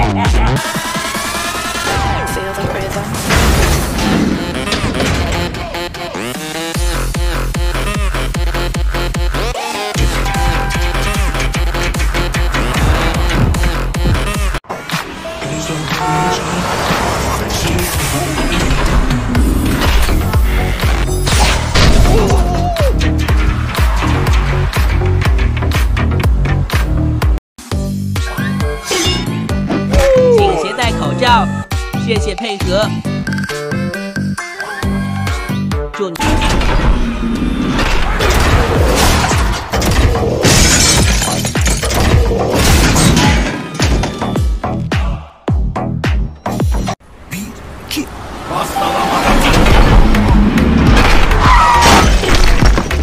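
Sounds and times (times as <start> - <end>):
background music: 0.0 - 47.0
crash: 1.8 - 6.2, 48.8 - 53.0
music with deep bass beat: 6.2 - 14.6, 44.3 - 47.0
glass shattering: 38.3 - 44.0
car driving past: 47.6 - 51.0.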